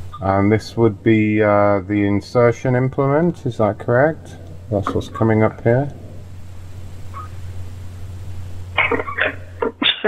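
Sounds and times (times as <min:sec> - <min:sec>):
telephone line hum and hiss: 0:00.0 - 0:10.0.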